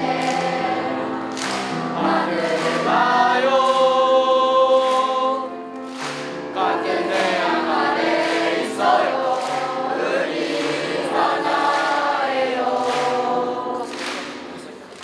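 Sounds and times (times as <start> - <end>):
choir singing long notes: 0.0 - 14.6.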